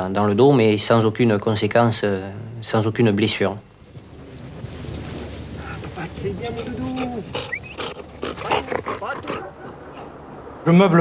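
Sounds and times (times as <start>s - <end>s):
dog whining: 4.0s - 10.1s
dog barking and yelping: 4.2s - 10.2s.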